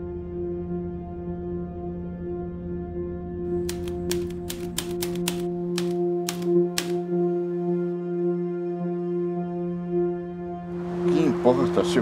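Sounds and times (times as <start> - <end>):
typewriter keys clicking: 3.6 - 7.0
ambient music drone: 6.5 - 11.8.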